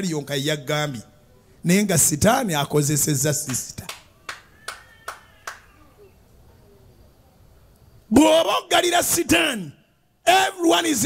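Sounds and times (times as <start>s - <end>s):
hand claps: 3.5s - 5.7s.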